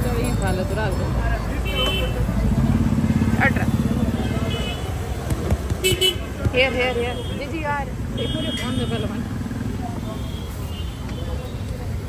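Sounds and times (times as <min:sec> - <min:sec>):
motorcycle engine running: 0:00.0 - 0:12.0
street chatter: 0:00.0 - 0:12.0.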